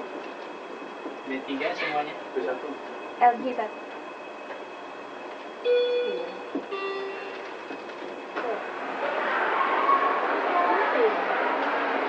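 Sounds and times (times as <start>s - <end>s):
elevator car running noise: 0.0s - 12.0s.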